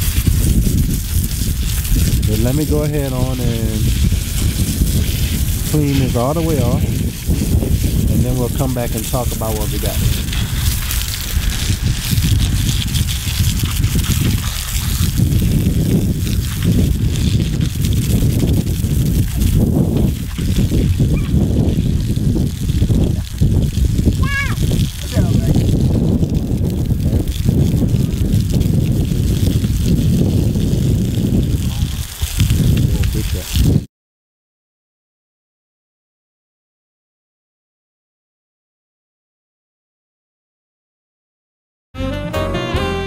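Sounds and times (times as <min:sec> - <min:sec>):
hose nozzle spraying water: 0:00.0 - 0:33.8
wind rumbling on microphone: 0:00.0 - 0:33.9.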